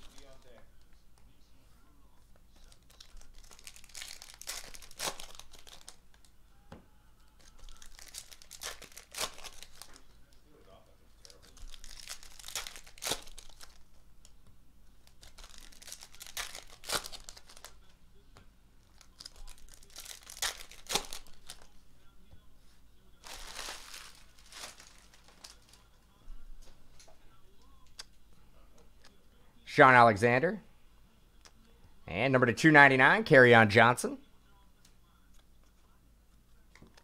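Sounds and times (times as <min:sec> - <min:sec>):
foil packs tearing and crinkling: 0:02.8 - 0:06.2, 0:07.7 - 0:09.9, 0:11.2 - 0:13.8, 0:15.1 - 0:17.8, 0:19.0 - 0:21.7, 0:23.2 - 0:25.8.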